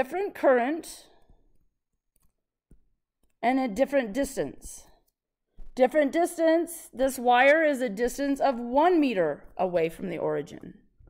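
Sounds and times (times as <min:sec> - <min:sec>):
stylus tapping tablet screen: 0:01.2 - 0:06.2.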